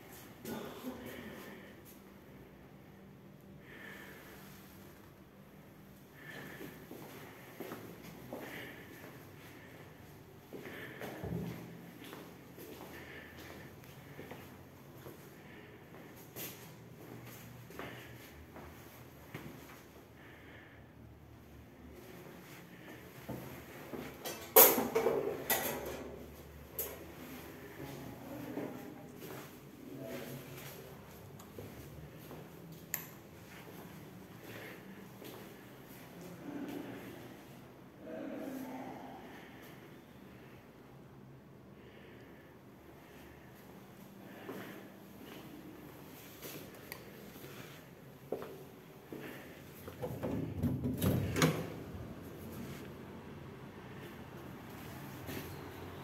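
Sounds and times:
knocks and clatters in tiled room: 0:10.6 - 0:14.2, 0:22.8 - 0:29.6, 0:44.4 - 0:52.9.

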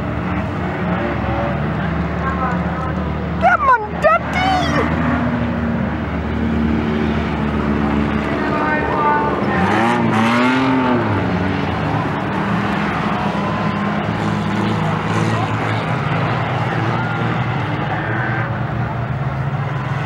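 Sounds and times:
race car engines: 0:00.0 - 0:20.0
engine revving: 0:06.3 - 0:17.9.

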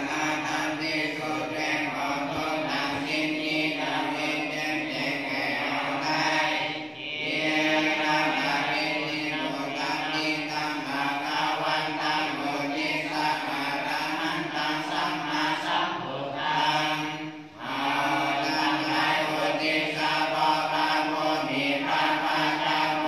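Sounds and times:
monks chanting in unison: 0:00.0 - 0:23.0.

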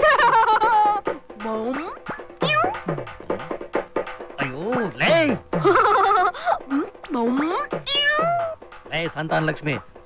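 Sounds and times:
drum strokes with dropping pitch: 0:00.0 - 0:10.0
rising meow-like note: 0:02.4 - 0:02.8, 0:07.8 - 0:08.6.

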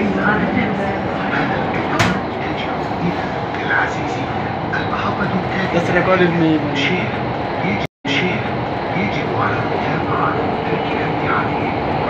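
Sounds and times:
train running in tunnel: 0:00.0 - 0:12.0.

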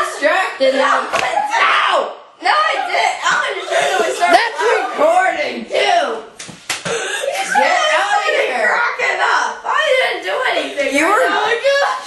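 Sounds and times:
excited boys' voices: 0:00.0 - 0:12.0
hand smacks: 0:06.4 - 0:07.0.

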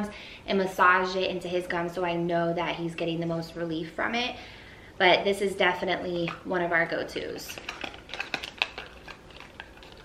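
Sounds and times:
plastic tube and box clicking: 0:07.5 - 0:10.0.

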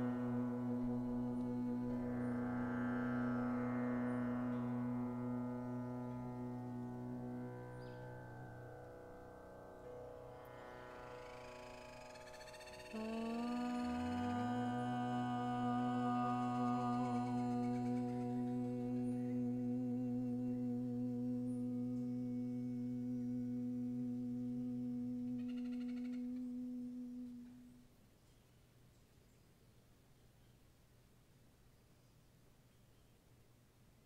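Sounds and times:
higher voice humming: 0:00.0 - 0:03.6, 0:11.2 - 0:27.9
lower voice humming: 0:00.0 - 0:08.1, 0:11.0 - 0:27.9.

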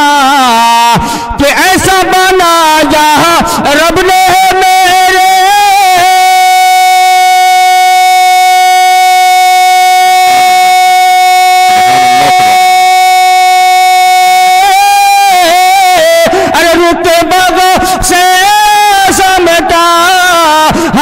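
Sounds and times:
man singing into microphone: 0:00.0 - 0:21.0.

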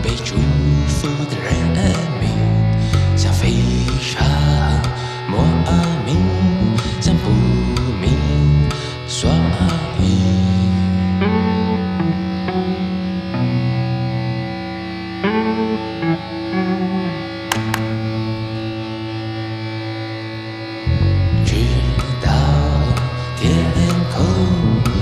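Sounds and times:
held low tones: 0:00.0 - 0:14.3, 0:15.3 - 0:25.0
plucked effected guitar notes: 0:00.0 - 0:25.0
full band playing: 0:17.5 - 0:18.4.

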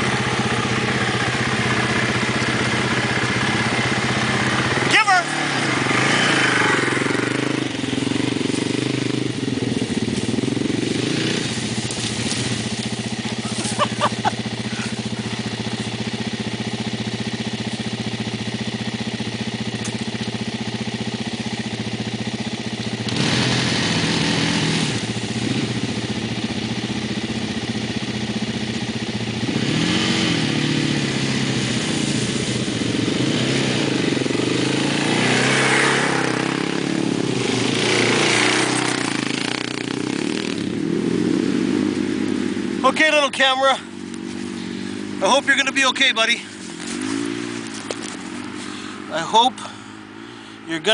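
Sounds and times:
atv engine idling and revving: 0:00.0 - 0:50.9.

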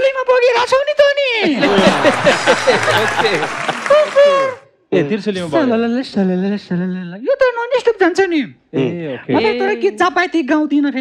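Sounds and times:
audience applauding: 0:01.6 - 0:04.6
voices laughing and calling out: 0:01.6 - 0:04.6.

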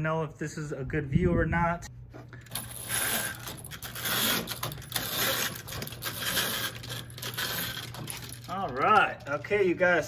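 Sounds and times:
motorized window shade whirring: 0:02.6 - 0:09.0.

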